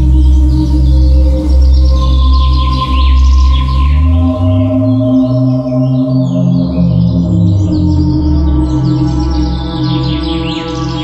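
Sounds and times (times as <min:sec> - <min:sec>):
ambient drone music: 0:00.0 - 0:11.0
birds chirping: 0:00.0 - 0:11.0.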